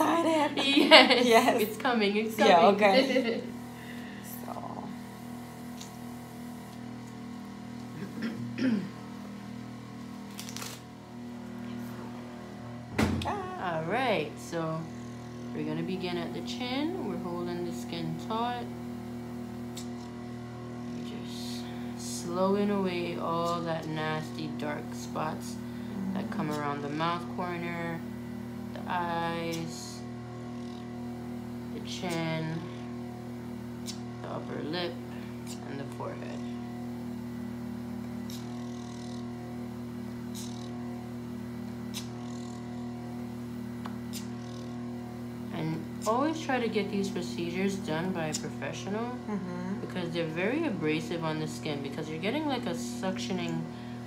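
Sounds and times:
vacuum pump humming: 0:00.0 - 0:54.0.

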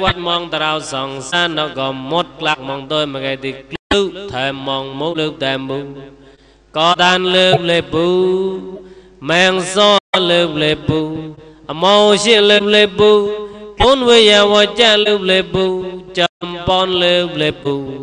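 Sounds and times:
man chanting: 0:00.0 - 0:06.1, 0:06.7 - 0:18.0.

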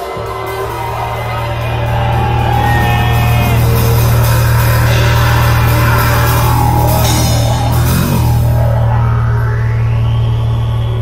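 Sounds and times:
drum kit with cymbals: 0:00.0 - 0:09.0
didgeridoo drone: 0:00.0 - 0:11.0
pulsing electronic beat: 0:00.0 - 0:11.0.

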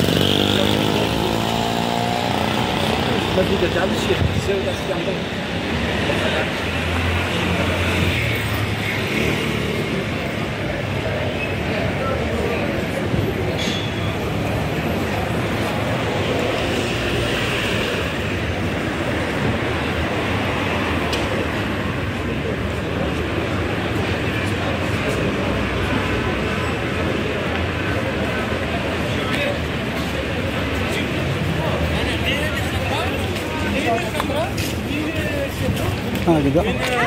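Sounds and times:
city traffic: 0:00.0 - 0:37.0.

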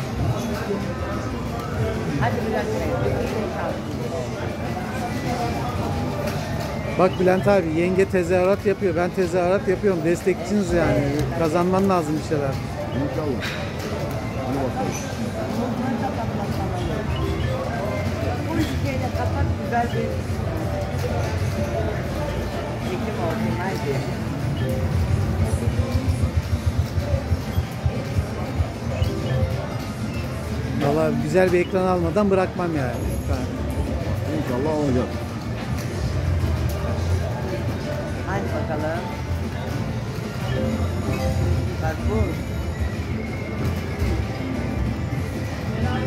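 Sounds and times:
electronic slot machine music: 0:01.0 - 0:46.0
slot machine music and jingles: 0:39.3 - 0:45.9.

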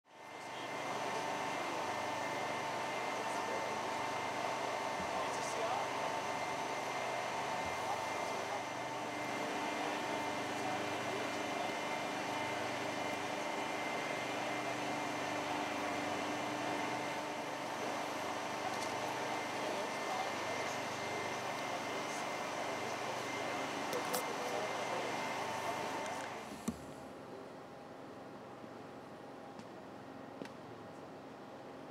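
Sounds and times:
faint indistinct voices: 0:00.1 - 0:27.9
steady mechanical hum: 0:00.1 - 0:31.9.

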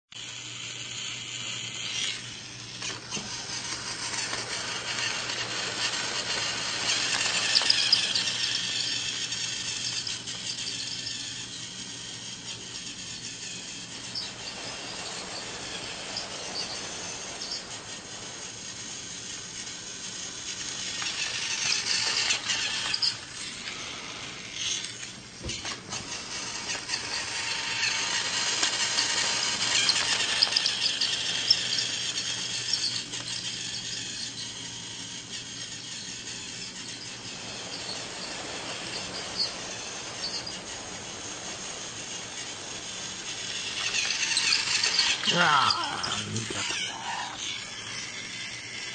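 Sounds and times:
toy train motor whirring: 0:00.1 - 0:48.9.

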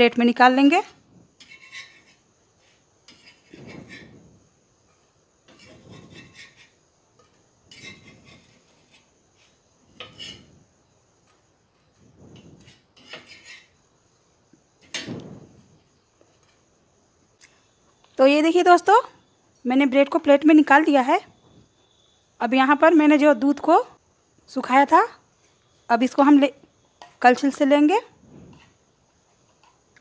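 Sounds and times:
metal spatula scraping griddle: 0:01.3 - 0:13.8.

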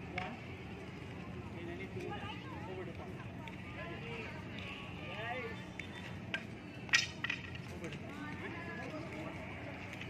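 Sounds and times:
sticks clacking: 0:05.8 - 0:07.6.

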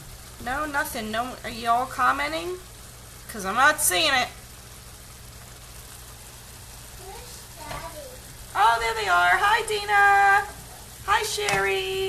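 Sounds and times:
pot simmering with soft sizzle: 0:00.0 - 0:12.0
faint voice: 0:07.0 - 0:08.3.

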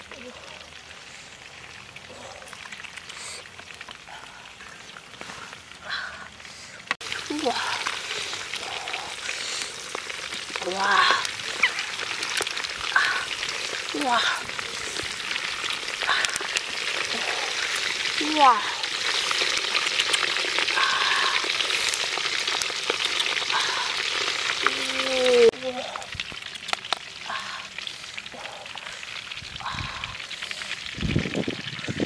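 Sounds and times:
food sizzling in a wok: 0:07.0 - 0:32.0.

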